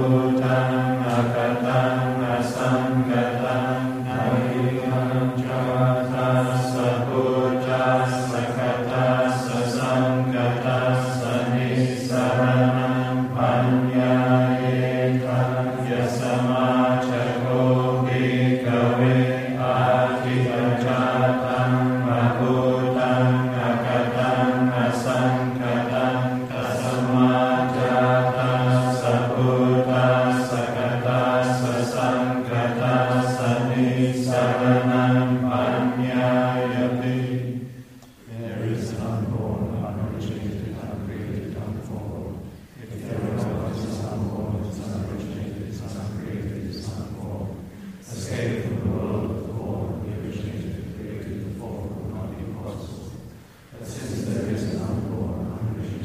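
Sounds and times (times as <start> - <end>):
voices chanting in unison: 0.0 - 56.0.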